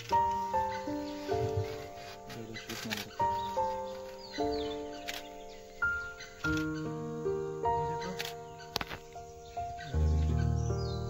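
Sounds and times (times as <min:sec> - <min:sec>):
slow melody of held notes: 0:00.0 - 0:11.0.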